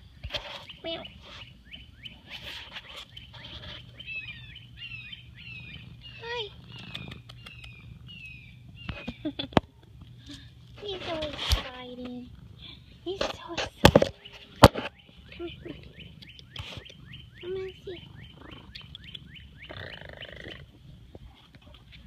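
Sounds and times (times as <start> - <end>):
sharp clicks: 6.7 - 7.8, 16.1 - 17.0, 18.7 - 19.3.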